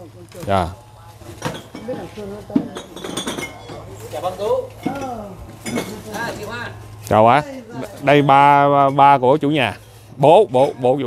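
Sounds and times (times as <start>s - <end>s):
dishes and cutlery clinking: 1.4s - 4.0s, 4.8s - 6.3s, 8.6s - 9.2s.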